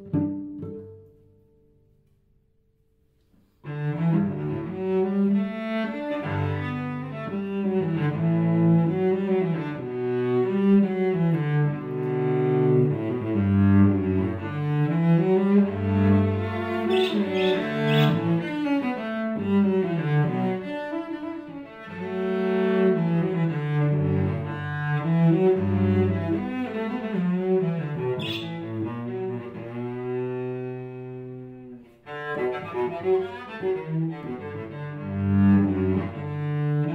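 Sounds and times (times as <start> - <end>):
bowed cello: 0.0 - 1.5, 3.6 - 36.9.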